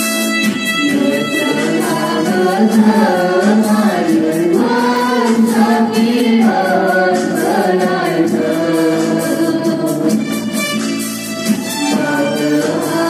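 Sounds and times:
steady beat: 0.0s - 13.0s
congregation singing a hymn: 0.8s - 10.3s, 11.8s - 13.0s.

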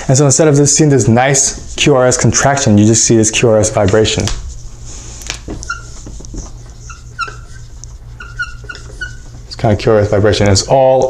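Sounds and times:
low steady hum: 0.0s - 11.0s
marker squeaking on a whiteboard: 3.7s - 10.7s.

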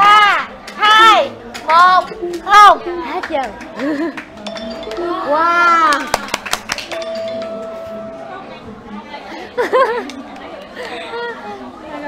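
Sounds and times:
people chattering excitedly: 0.0s - 12.0s.

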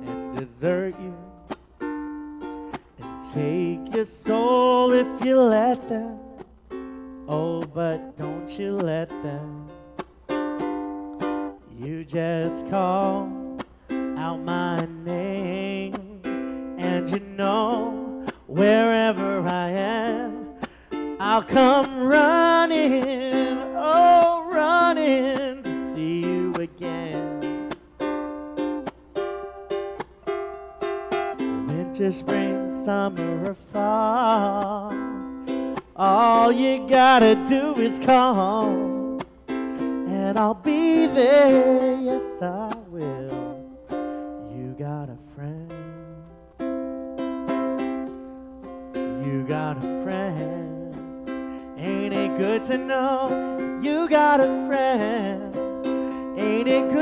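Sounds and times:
man singing: 0.0s - 1.6s, 3.0s - 6.5s, 7.2s - 10.0s, 11.5s - 27.8s, 31.4s - 46.6s, 48.9s - 57.0s
ukulele strumming: 0.0s - 57.0s.

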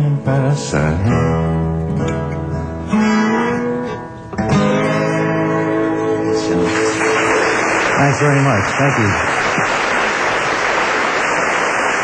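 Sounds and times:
acoustic guitar chord ringing: 0.0s - 8.6s
audience applauding: 6.5s - 12.0s.

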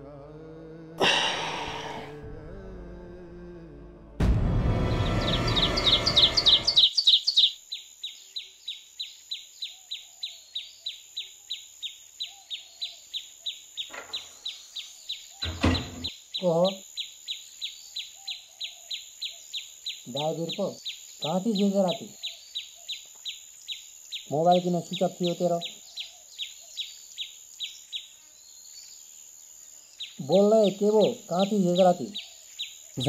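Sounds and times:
bird chirping: 4.8s - 33.0s.

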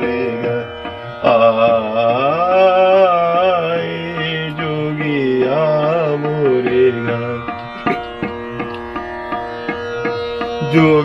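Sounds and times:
man singing long held vowel: 0.0s - 8.2s, 10.6s - 11.0s
steady drone: 0.0s - 11.0s.

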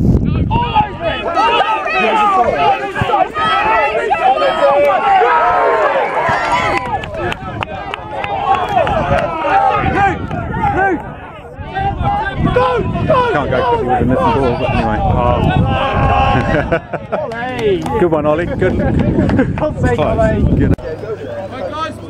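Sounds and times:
spectators cheering and shouting: 0.3s - 19.3s.

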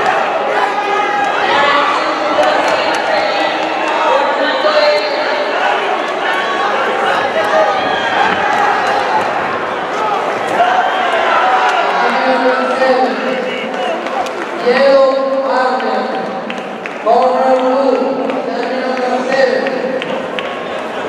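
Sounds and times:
crowd talking and shouting: 0.0s - 21.0s.

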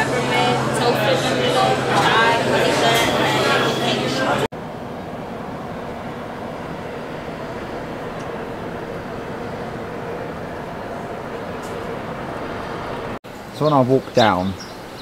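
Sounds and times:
traffic hum: 0.0s - 15.0s.

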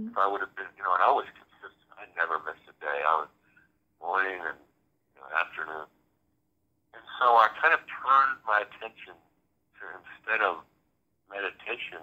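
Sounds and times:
person talking: 0.0s - 1.2s, 4.0s - 4.6s, 11.4s - 12.0s.

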